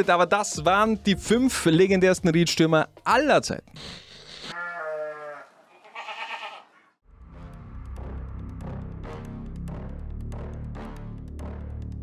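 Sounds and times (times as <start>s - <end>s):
goat bleating: 3.8s - 6.9s.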